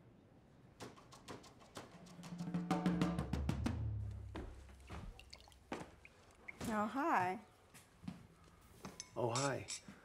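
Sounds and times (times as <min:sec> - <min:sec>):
footsteps on wooden stairs: 0:04.2 - 0:06.0.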